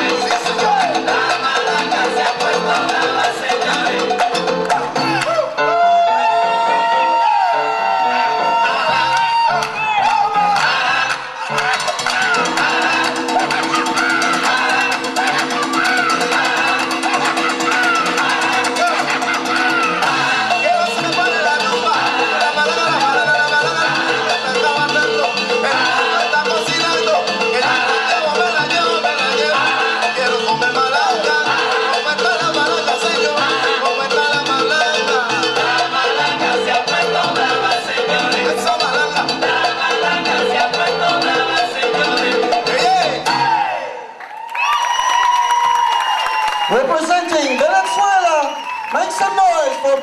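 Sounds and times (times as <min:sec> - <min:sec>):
salsa music: 0:00.0 - 0:50.0.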